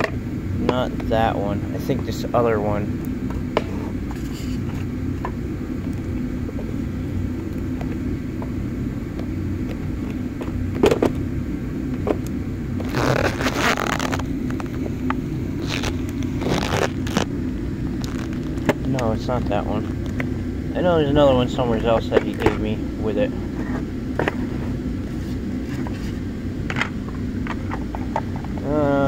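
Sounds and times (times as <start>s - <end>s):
steady low hum: 0.0s - 29.0s
rustling and scraping: 3.3s - 4.9s, 12.8s - 14.9s, 15.6s - 17.3s, 18.0s - 19.0s, 23.4s - 28.6s.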